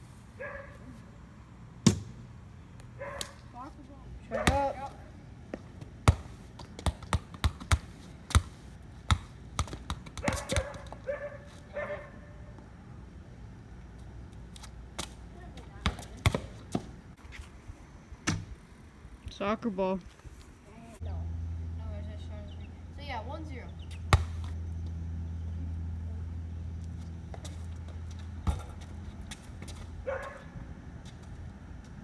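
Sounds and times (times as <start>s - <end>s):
ball bouncing on concrete: 1.8s - 2.2s, 4.3s - 11.2s, 14.5s - 16.9s, 23.8s - 25.0s, 27.0s - 30.4s.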